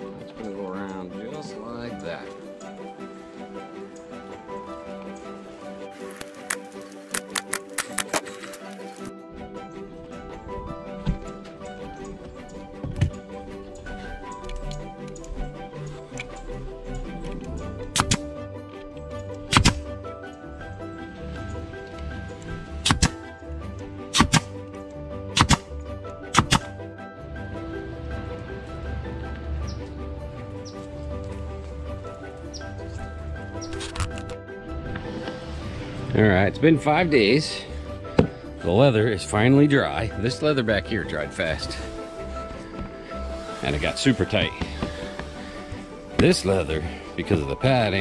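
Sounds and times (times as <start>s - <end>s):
background music: 0.0s - 48.0s
pneumatic stapler firing: 17.9s - 18.2s, 19.5s - 19.8s, 22.8s - 23.2s, 24.1s - 24.5s, 25.3s - 25.7s, 26.3s - 26.7s.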